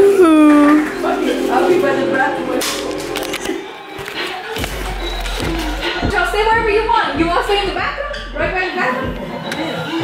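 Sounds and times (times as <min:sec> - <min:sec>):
faint music: 0:00.0 - 0:10.0
indistinct voices: 0:00.0 - 0:10.0.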